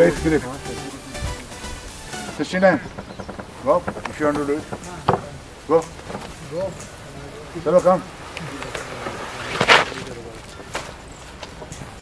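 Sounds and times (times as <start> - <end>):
faint background voices: 2.4 - 12.0
sliding down wooden plank: 7.8 - 11.7.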